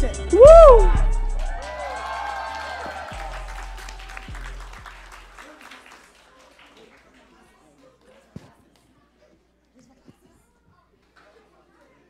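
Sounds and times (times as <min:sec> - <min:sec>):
hip-hop backing track: 0:00.0 - 0:05.3
audience applauding: 0:01.4 - 0:07.4.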